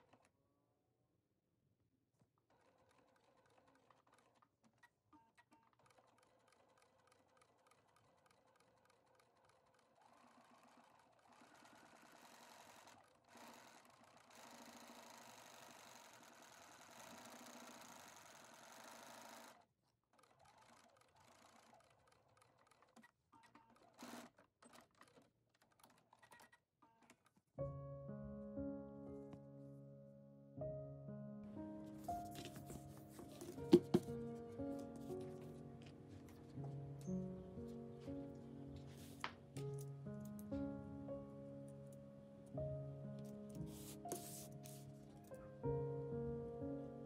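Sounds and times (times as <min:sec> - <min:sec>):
sewing machine stitching: 0:02.4 - 0:27.4.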